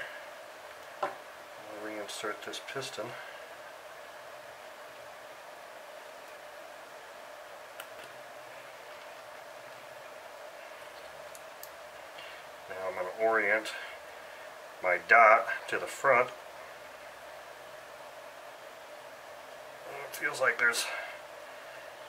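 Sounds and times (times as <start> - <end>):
room hum: 0.0 - 22.0.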